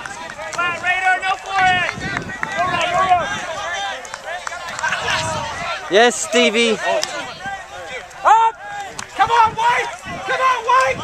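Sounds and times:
players shouting: 0:00.0 - 0:11.0.

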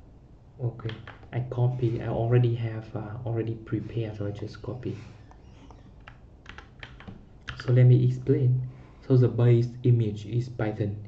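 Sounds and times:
soft keyboard keystrokes: 0:00.8 - 0:01.3, 0:05.7 - 0:07.8.

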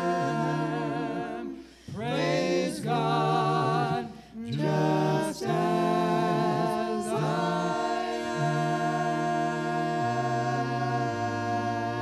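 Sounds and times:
group singing a hymn a cappella: 0:00.0 - 0:12.0.

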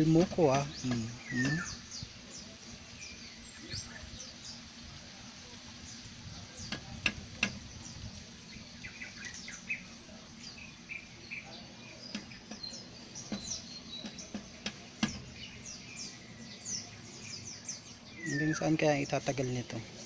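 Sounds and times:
small birds chirping: 0:00.0 - 0:20.0
beak tapping on window glass: 0:12.0 - 0:15.8.

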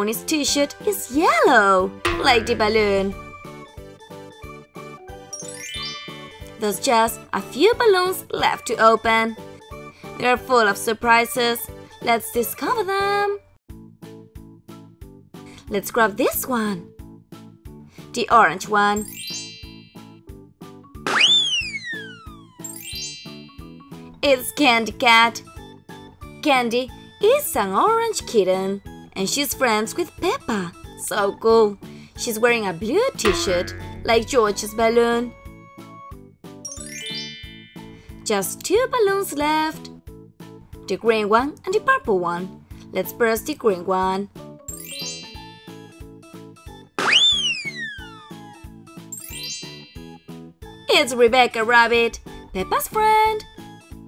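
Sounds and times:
cartoon boing sound effect: 0:02.1 - 0:03.4, 0:33.2 - 0:35.3
cheerful children's music: 0:05.3 - 0:13.3, 0:26.4 - 0:35.5, 0:36.6 - 0:39.9, 0:43.0 - 0:45.9, 0:47.3 - 0:53.8
rising tinkling sweep: 0:05.6 - 0:06.6, 0:36.7 - 0:38.0.

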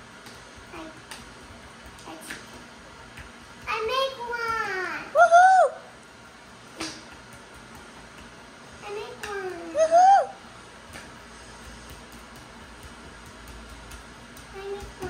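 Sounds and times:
young child's voice: 0:00.7 - 0:01.1, 0:02.0 - 0:02.6, 0:03.6 - 0:05.7, 0:08.8 - 0:10.4, 0:14.5 - 0:15.0.

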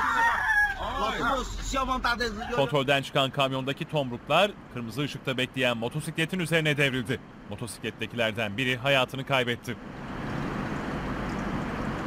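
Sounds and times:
people wailing and shouting: 0:00.0 - 0:01.7.

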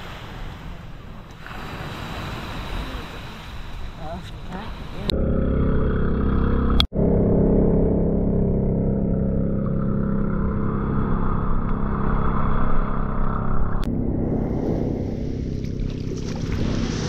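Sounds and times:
boat engine droning: 0:00.3 - 0:17.0.

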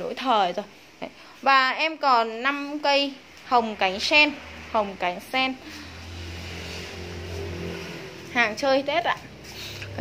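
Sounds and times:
vehicle engine humming: 0:03.7 - 0:10.0.

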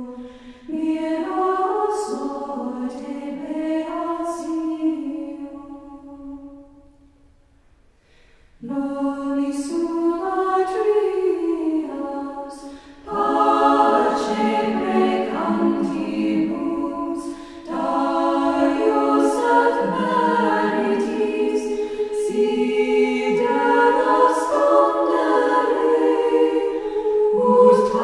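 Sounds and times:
choir singing a cappella: 0:00.0 - 0:07.0, 0:08.6 - 0:28.0.

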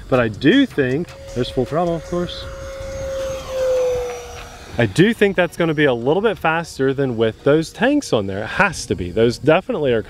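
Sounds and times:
rc jet ducted fan whine: 0:00.0 - 0:10.0.

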